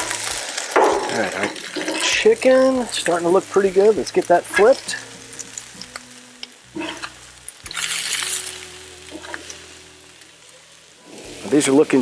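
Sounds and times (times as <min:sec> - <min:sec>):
metal spatula flipping: 0:00.0 - 0:03.2, 0:04.1 - 0:12.0
meat sizzling on a griddle: 0:00.0 - 0:12.0.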